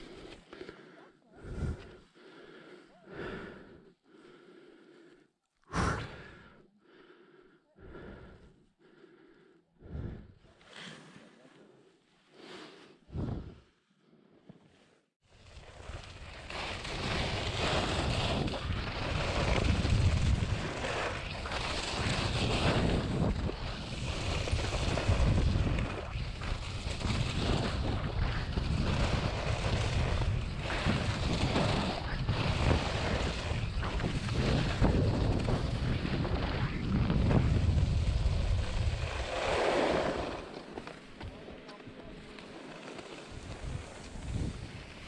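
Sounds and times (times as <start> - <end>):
skis running over snow: 15.3 - 45.0
wind rushing on microphone: 15.8 - 40.4, 43.3 - 45.0
ski swishes: 16.5 - 45.0.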